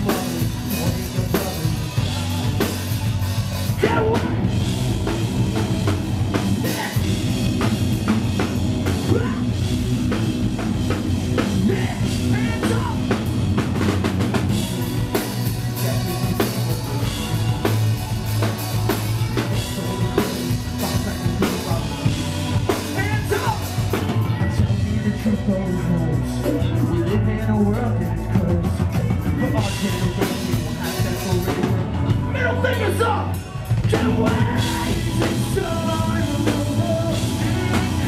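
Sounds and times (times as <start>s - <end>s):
live rock band playing: 0.0s - 38.0s
pounding drum kit: 0.0s - 38.0s.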